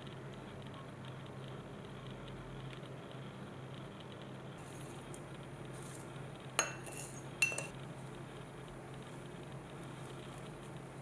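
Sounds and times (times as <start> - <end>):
scooping loose tea leaves: 4.6 - 8.1
wooden spoon clinking ceramic bowl: 6.6 - 7.8.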